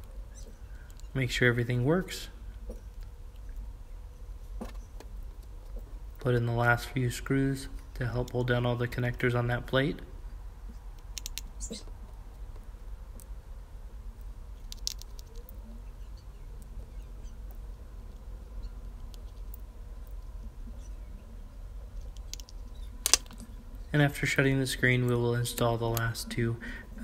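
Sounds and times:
steady low hum: 0.0s - 27.0s
screwdriver ticks and clicks: 11.2s - 11.5s
sharp click: 11.2s - 11.9s.

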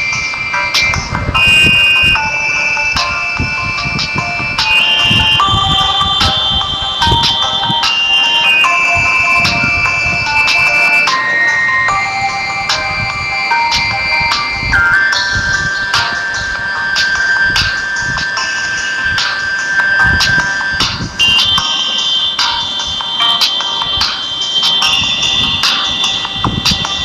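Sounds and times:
high-pitched electronic melody: 0.0s - 27.0s.

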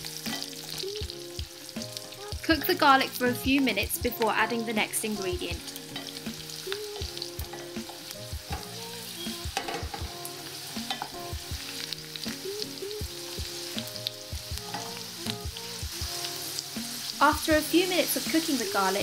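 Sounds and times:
spices sizzling in hot oil: 0.0s - 19.0s.

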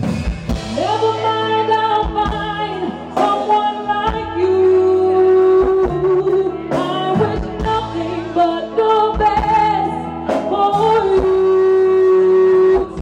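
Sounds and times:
live band playing pop ballad: 0.0s - 13.0s
woman singing: 0.7s - 13.0s.

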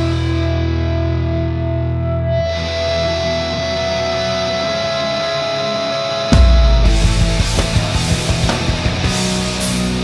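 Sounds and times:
distorted electric guitar chord: 0.0s - 10.0s.

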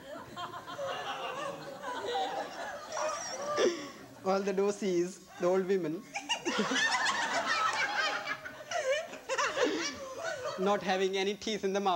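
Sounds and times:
people laughing heartily: 0.0s - 4.2s, 6.1s - 10.6s.

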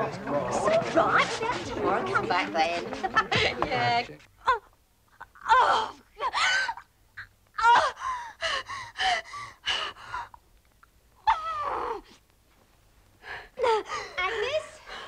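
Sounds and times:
woman gasping: 7.6s - 10.4s.

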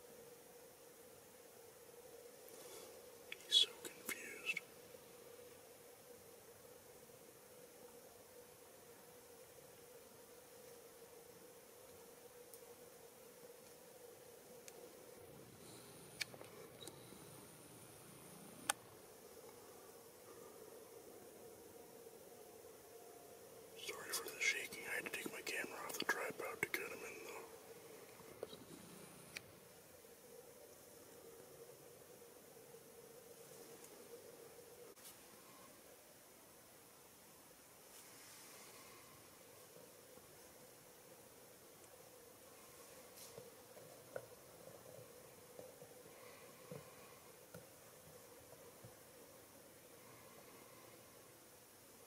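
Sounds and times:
faint steady hum: 0.0s - 52.0s
person whispering: 3.3s - 4.7s, 23.8s - 27.7s.

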